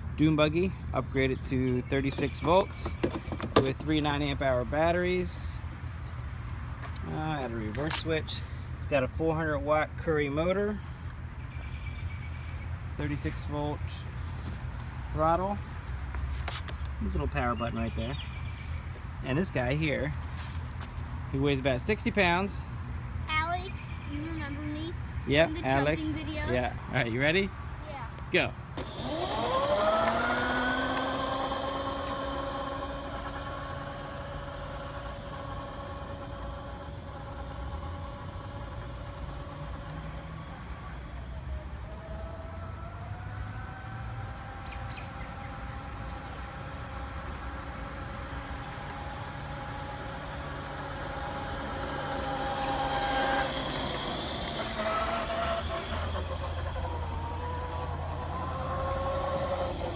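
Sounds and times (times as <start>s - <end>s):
electric motor whining: 28.8s - 59.9s.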